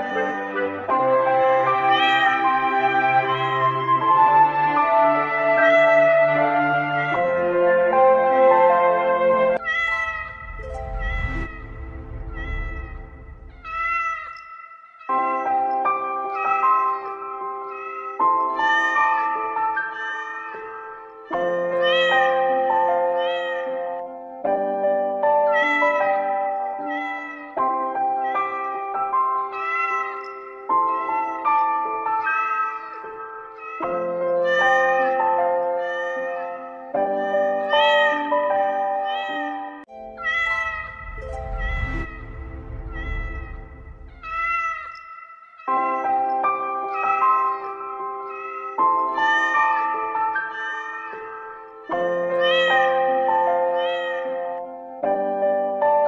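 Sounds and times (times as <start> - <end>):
cat meowing: 9.6 - 11.6, 12.3 - 14.4, 44.1 - 46.3
low rumble: 9.6 - 13.8, 40.3 - 44.7.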